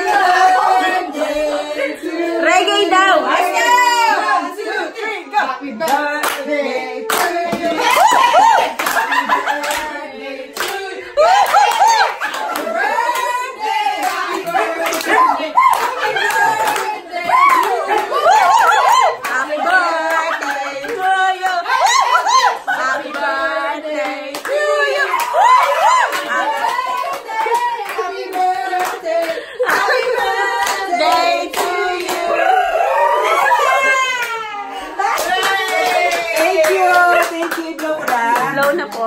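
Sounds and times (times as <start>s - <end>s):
voices singing along: 0.0s - 39.0s
people clapping hands: 5.8s - 22.5s, 23.1s - 32.4s, 33.4s - 39.0s
excited voices calling out: 14.8s - 19.8s, 20.4s - 22.8s, 32.1s - 37.2s.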